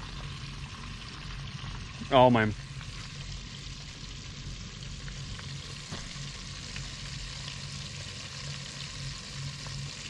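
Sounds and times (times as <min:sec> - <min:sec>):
fish frying in hot oil: 0:00.0 - 0:10.0
low hum: 0:00.0 - 0:10.0.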